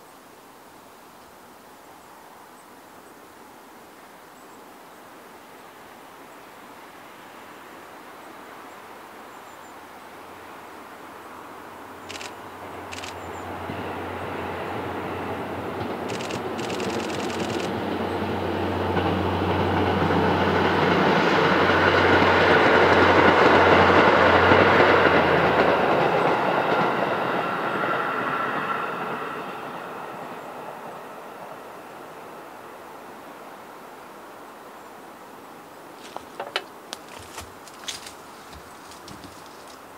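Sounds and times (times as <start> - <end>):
diesel train engine hum: 10.4 - 33.4
train wheels on rails: 12.1 - 30.7, 36.0 - 39.9.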